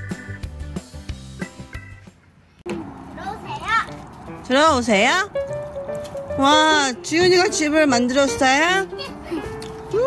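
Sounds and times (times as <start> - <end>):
young children playing: 2.7 - 4.2, 8.6 - 10.0.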